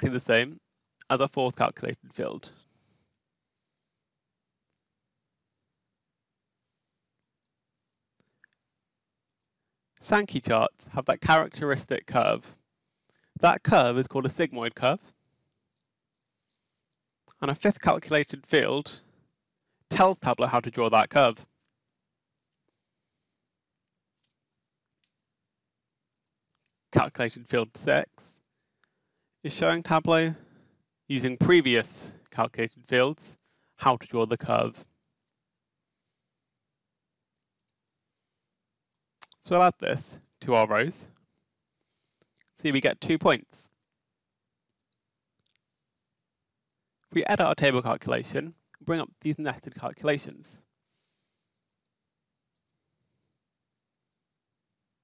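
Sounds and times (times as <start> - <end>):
computer mouse clicks: 24.2 - 24.4, 26.1 - 26.8, 37.4 - 37.8, 44.8 - 45.6, 51.7 - 52.8.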